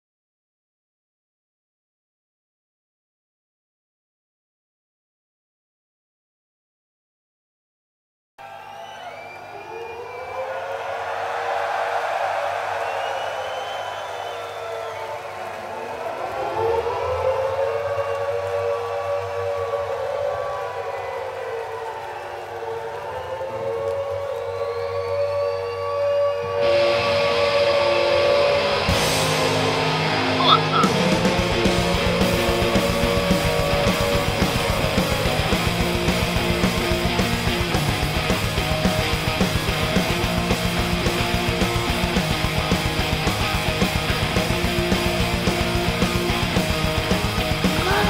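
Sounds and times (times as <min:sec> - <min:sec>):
siren wailing: 0:16.4 - 0:28.4, 0:30.4 - 0:30.9
loud music: 0:27.8 - 0:48.0.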